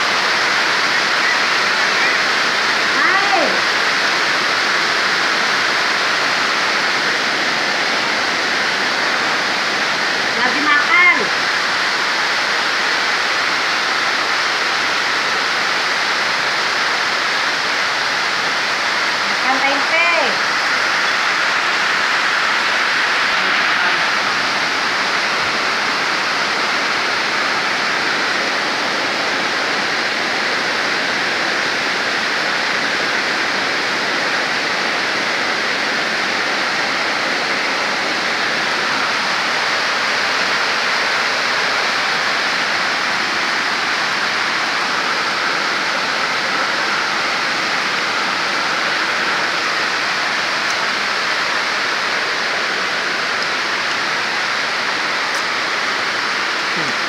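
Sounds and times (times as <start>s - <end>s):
heavy rain falling: 0.0s - 57.0s.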